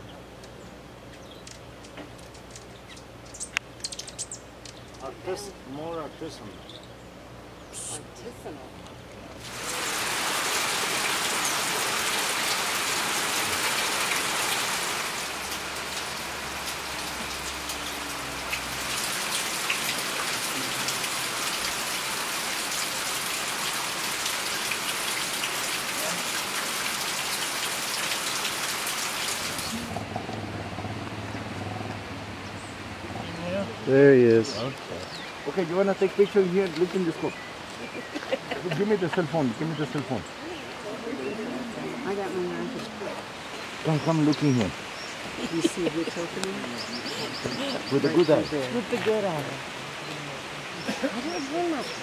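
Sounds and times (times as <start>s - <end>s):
rain falling on leaves: 9.4s - 33.9s, 34.6s - 41.1s, 41.8s - 52.0s.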